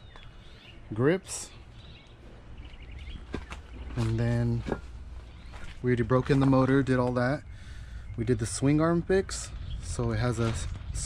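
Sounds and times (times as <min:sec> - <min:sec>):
bird chirping trill: 0:00.0 - 0:06.2
steady low rumble: 0:00.0 - 0:11.0.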